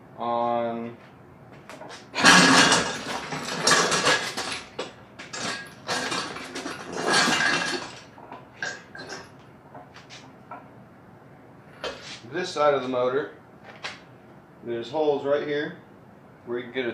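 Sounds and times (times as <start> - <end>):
metal clattering and clanking: 1.7 - 10.7.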